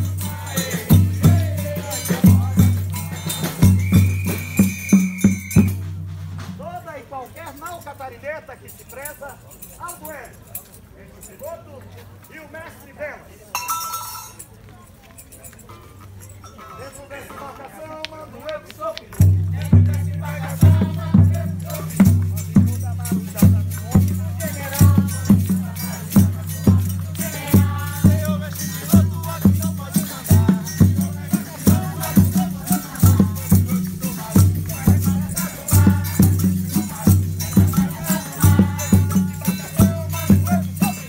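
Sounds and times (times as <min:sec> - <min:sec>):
people singing: 0:00.0 - 0:04.7, 0:19.2 - 0:41.0
low ringing drum beats: 0:00.0 - 0:06.8, 0:19.2 - 0:41.0
shaker rattles: 0:00.0 - 0:16.5, 0:18.4 - 0:41.0
voices: 0:00.0 - 0:41.0
long high whistle note: 0:03.7 - 0:05.8.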